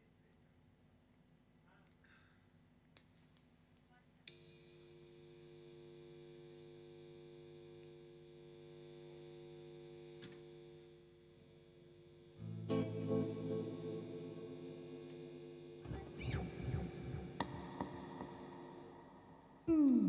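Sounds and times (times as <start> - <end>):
electric guitar chord: 10.1 - 20.0.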